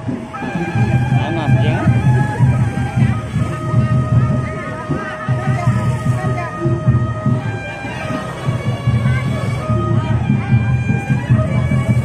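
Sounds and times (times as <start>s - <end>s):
high wavering call: 0.0s - 12.0s
large drums beating: 0.0s - 12.0s
people's voices: 0.0s - 12.0s.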